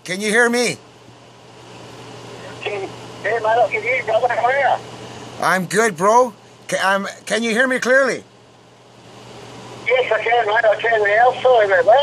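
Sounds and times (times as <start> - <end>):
faint voice: 2.4 - 4.8.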